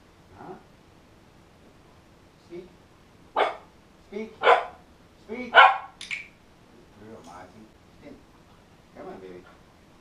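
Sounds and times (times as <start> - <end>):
puppy barking: 3.4 - 3.7, 4.4 - 4.8, 5.5 - 6.0.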